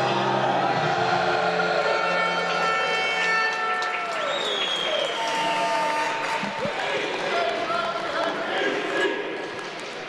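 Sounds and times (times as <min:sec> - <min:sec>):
music: 0:00.0 - 0:04.4
crowd applauding and cheering: 0:00.0 - 0:08.6.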